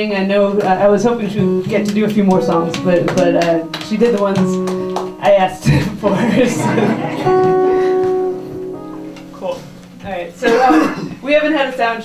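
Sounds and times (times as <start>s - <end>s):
plucked guitar note ringing: 0.5s - 11.2s.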